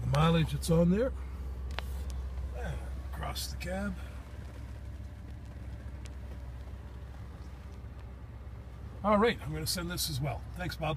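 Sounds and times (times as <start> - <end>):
truck engine idling: 0.0 - 10.9.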